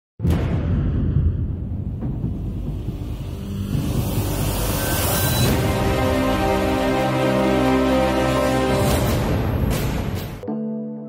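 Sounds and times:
theme music: 0:00.2 - 0:11.0.

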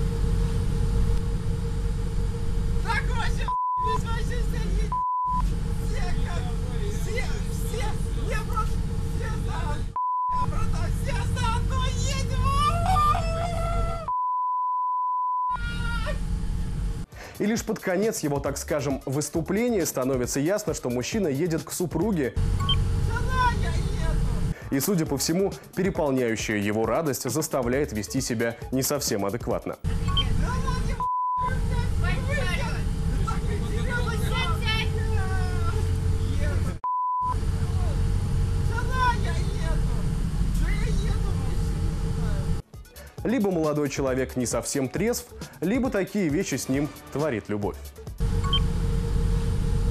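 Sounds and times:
bus interior rumble: 0:00.0 - 0:14.2, 0:15.5 - 0:17.1, 0:22.4 - 0:24.6, 0:29.9 - 0:42.6, 0:48.2 - 0:49.9
man shouting excitedly: 0:02.8 - 0:04.9, 0:10.4 - 0:14.1, 0:30.3 - 0:36.7
censor bleep: 0:03.5 - 0:04.0, 0:04.9 - 0:05.5, 0:10.0 - 0:10.5, 0:14.1 - 0:15.6, 0:22.6 - 0:22.8, 0:30.0 - 0:30.4, 0:31.0 - 0:31.5, 0:36.8 - 0:37.4, 0:48.4 - 0:48.7
background music: 0:17.1 - 0:36.8, 0:42.2 - 0:48.6.

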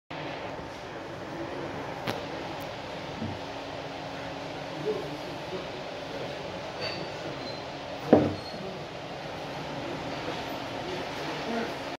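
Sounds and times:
glass clinking and ringing: 0:06.8 - 0:07.6.

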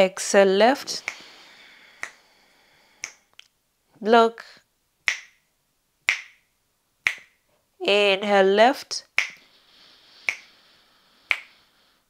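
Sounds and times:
soft inhale through nostril: 0:01.0 - 0:03.3, 0:09.4 - 0:12.0.

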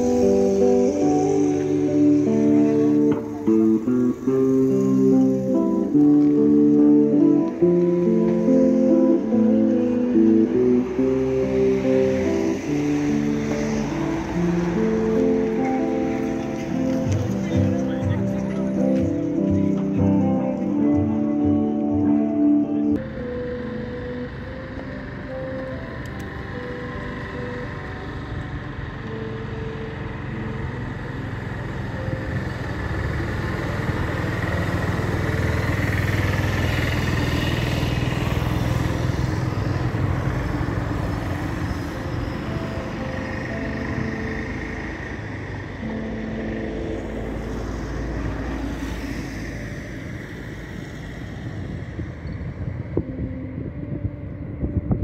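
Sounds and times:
faint music: 0:00.0 - 0:37.2
cars passing: 0:00.0 - 0:55.0.

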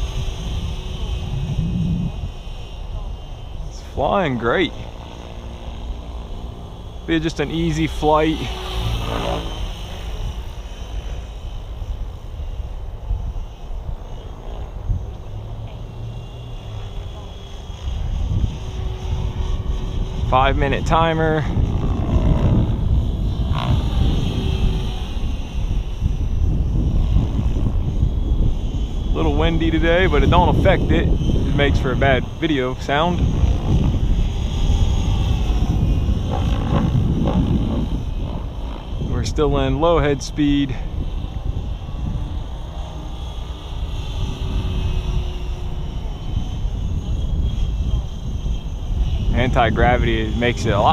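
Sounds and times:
rc helicopter rotor hum: 0:00.0 - 0:50.9
wind rumble on microphone: 0:00.0 - 0:50.9.

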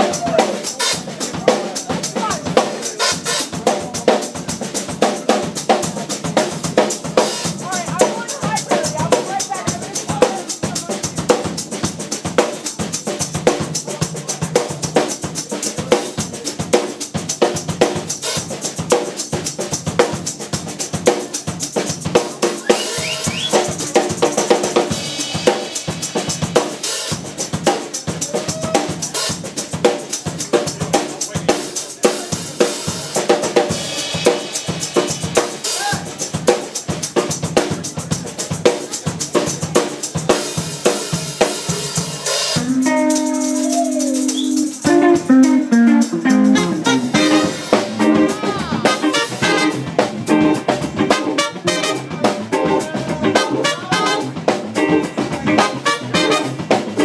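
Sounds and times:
drum solo on drums and cymbals: 0:00.0 - 0:57.0.

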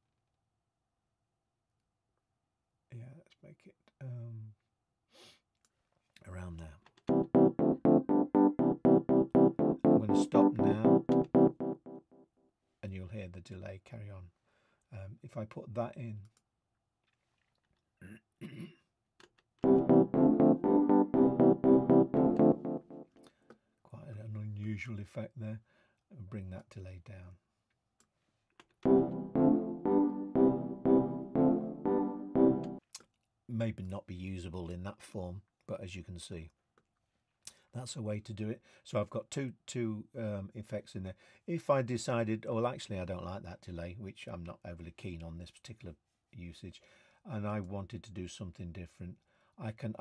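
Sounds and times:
electric piano chords with tape delay: 0:07.1 - 0:12.1, 0:19.6 - 0:23.2, 0:28.8 - 0:32.8.

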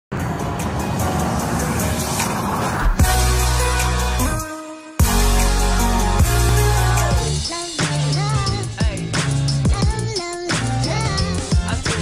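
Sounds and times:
news intro music: 0:00.1 - 0:07.4.

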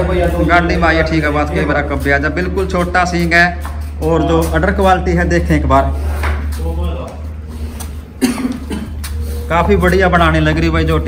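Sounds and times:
steady low hum: 0:00.0 - 0:11.0
short cough-like sound: 0:08.2 - 0:09.0.

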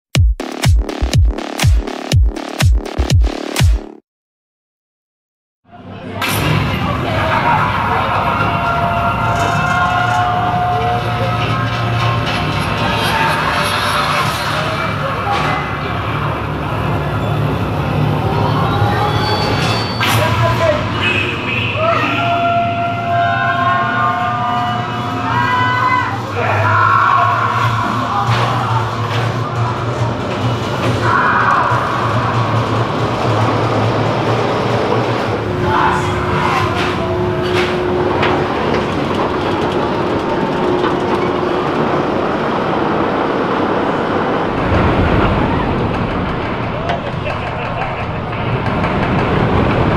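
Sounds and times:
music playing: 0:00.2 - 0:04.0
roller coaster train rolling: 0:05.9 - 0:49.9.

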